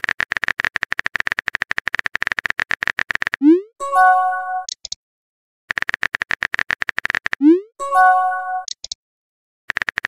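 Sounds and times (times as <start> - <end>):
chime chord with high blips: 3.6 - 4.7, 7.8 - 8.7
phone keyboard typing clicks: 5.7 - 7.4, 8.6 - 9.0, 9.7 - 10.0.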